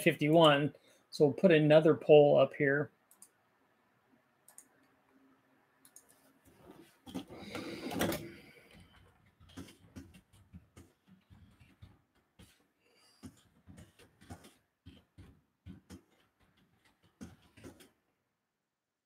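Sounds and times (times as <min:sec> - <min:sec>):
computer keyboard typing: 0:07.1 - 0:12.6, 0:13.2 - 0:17.9.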